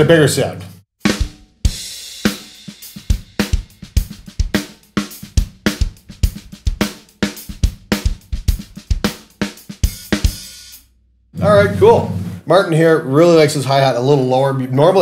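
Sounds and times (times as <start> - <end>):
snare drum: 1.0 - 10.8
hi-hat: 1.0 - 10.9.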